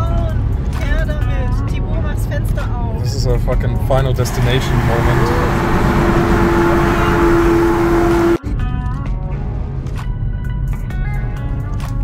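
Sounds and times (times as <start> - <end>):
car road noise hum: 0.0 - 8.4
music of short pitched notes: 4.3 - 8.4.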